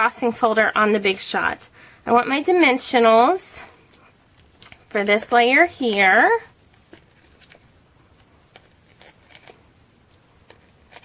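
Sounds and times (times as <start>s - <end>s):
paper rustling: 4.3s - 11.0s.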